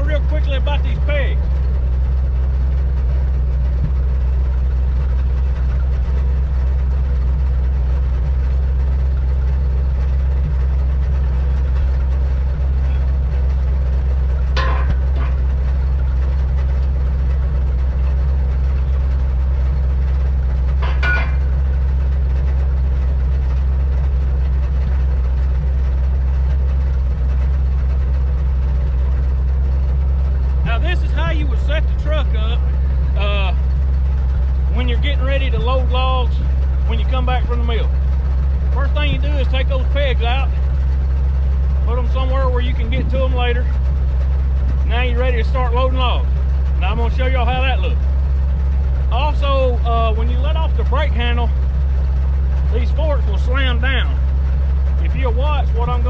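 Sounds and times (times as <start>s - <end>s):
truck engine idling: 0.0s - 56.0s.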